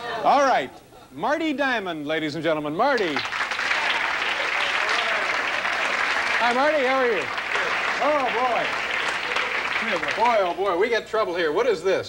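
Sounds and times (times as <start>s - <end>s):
studio audience applauding: 2.9s - 10.8s.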